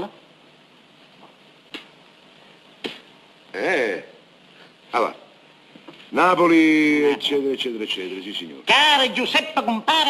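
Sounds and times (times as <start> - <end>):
film soundtrack hiss: 0.0 - 10.0.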